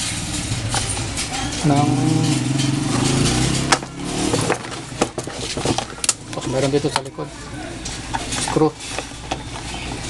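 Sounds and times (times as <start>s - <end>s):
low engine hum: 0.0s - 7.0s.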